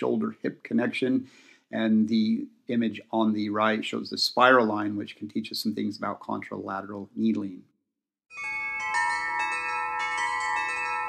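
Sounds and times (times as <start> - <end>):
metal tube wind chime ringing: 8.3 - 11.0.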